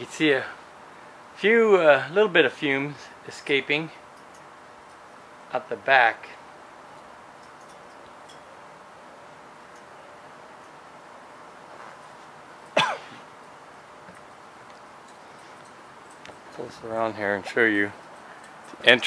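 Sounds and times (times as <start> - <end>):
person coughing: 12.8 - 13.3.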